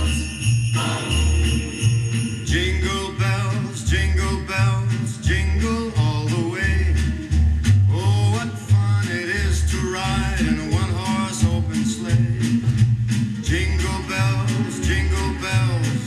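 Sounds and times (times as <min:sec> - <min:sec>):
song with singing and bass line: 0:00.0 - 0:16.0.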